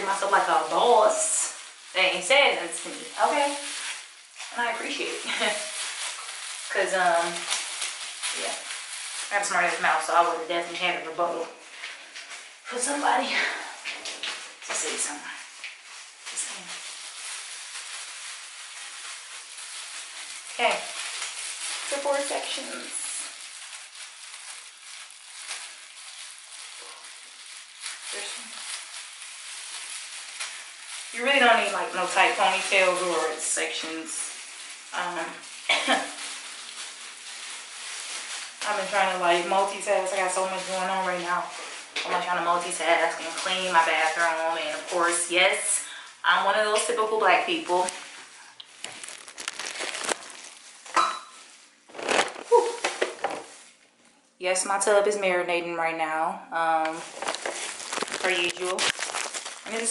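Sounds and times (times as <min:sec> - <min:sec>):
plastic gloves crinkling on hair: 0:00.0 - 0:59.9
camera handling rustling: 0:57.1 - 0:59.7.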